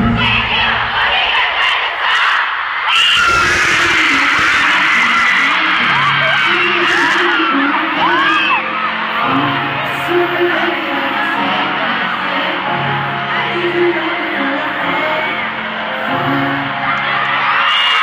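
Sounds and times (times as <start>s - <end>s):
crowd screaming and cheering: 0.0s - 18.0s
background music: 3.8s - 18.0s.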